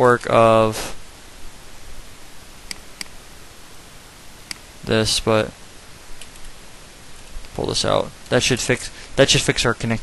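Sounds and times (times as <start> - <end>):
microphone hiss: 0.0 - 10.0.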